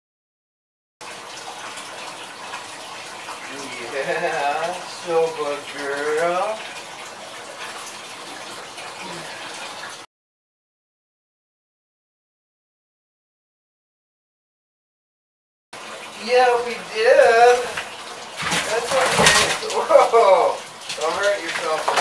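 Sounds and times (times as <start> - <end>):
water splashing in a bathtub: 1.0 - 10.1, 15.8 - 22.0
person speaking: 16.2 - 17.8, 18.6 - 22.0.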